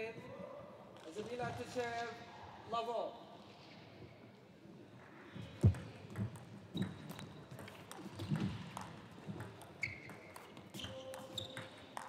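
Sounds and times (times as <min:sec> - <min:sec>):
arena hall ambience: 0:00.0 - 0:12.0.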